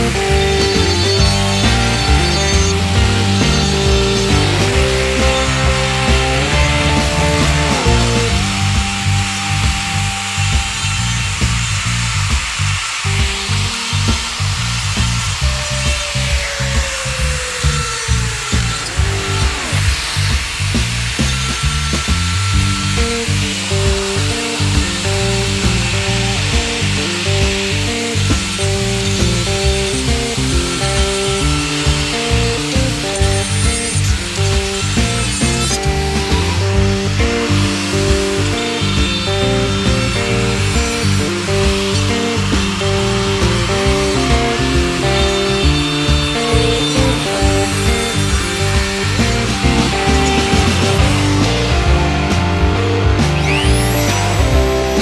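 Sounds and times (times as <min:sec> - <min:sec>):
die grinder cutting wood: 0:00.0 - 0:55.0
music with a steady beat: 0:00.0 - 0:55.0.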